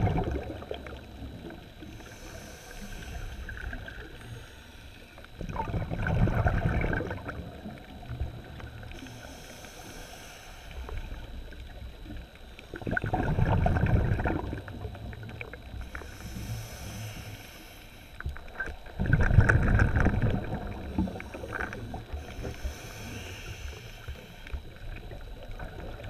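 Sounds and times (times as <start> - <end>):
diver's exhaled bubbles rumbling: 0.0 - 1.7, 5.4 - 8.9, 11.8 - 15.8, 18.4 - 22.5, 24.7 - 26.0
water noise: 0.0 - 26.0
small clicks underwater: 10.6 - 16.4, 18.1 - 26.0.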